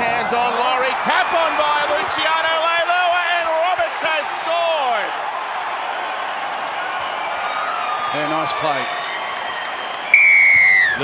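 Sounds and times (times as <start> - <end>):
stadium crowd noise: 0.0 - 11.0
man shouting excitedly: 0.1 - 5.2.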